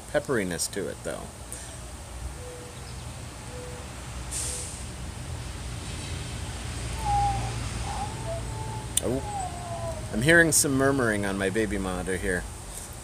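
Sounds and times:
baby murmuring through monitor: 7.9 - 10.2.

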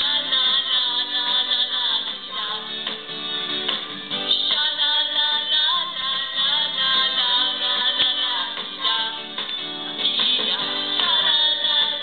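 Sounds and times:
woman singing through microphone: 0.0 - 2.8, 4.3 - 12.0
rock music: 0.0 - 12.0.

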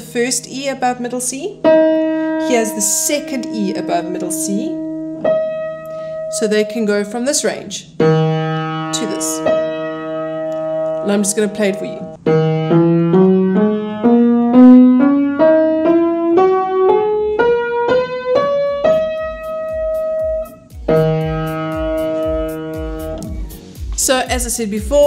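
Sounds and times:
upright piano playing a scale: 0.0 - 25.0.

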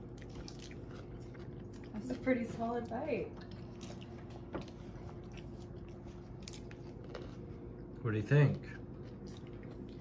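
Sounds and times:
child chewing: 0.0 - 2.3, 3.3 - 8.0, 8.6 - 10.0
low room hum: 0.0 - 10.0.

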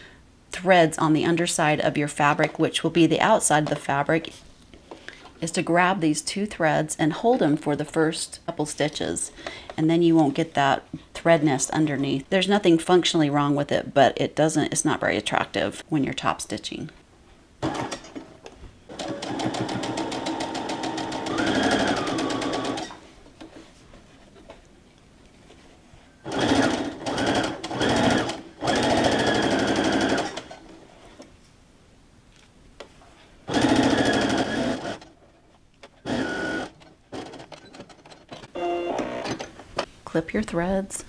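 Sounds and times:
electric sewing machine stitching: 17.6 - 18.1, 18.9 - 23.0, 26.2 - 30.6, 33.5 - 35.1, 36.0 - 37.5.

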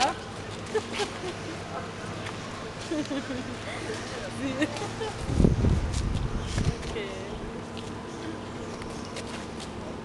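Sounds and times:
low rumbling microphone noise: 3.9 - 8.1.

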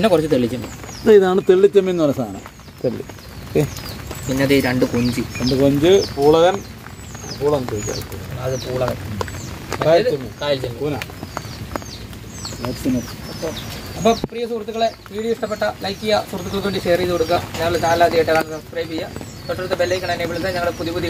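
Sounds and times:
people talking: 0.0 - 11.3, 12.6 - 21.0
birds chirping: 0.0 - 21.0.

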